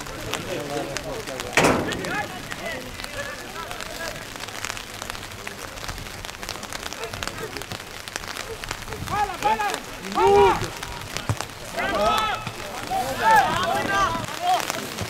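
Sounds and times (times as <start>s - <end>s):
faint shouting voices: 0.0s - 15.0s
rain falling on umbrellas: 0.0s - 15.0s
loud thud: 1.6s - 2.6s.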